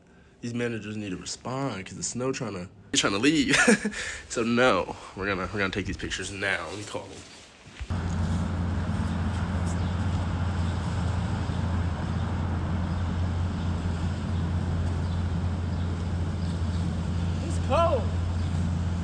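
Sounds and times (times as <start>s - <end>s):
vehicle engine humming: 7.9s - 19.0s.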